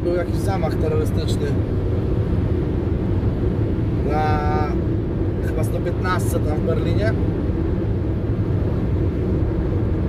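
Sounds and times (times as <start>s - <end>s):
vehicle engine and tyre drone: 0.0s - 10.0s.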